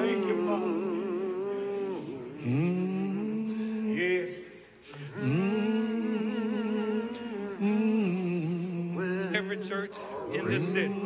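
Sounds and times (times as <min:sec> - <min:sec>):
man humming a hymn: 0:00.0 - 0:11.0.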